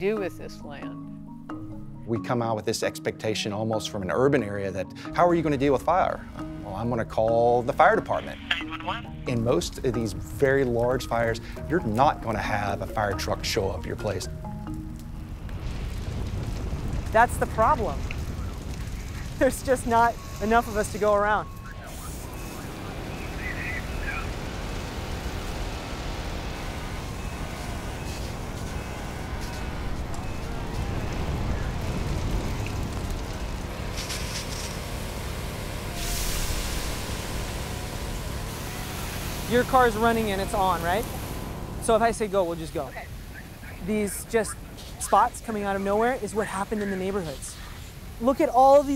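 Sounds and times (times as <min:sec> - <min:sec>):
wildfire low rumble: 0:04.7 - 0:48.9
fire rushing hiss: 0:13.7 - 0:48.9.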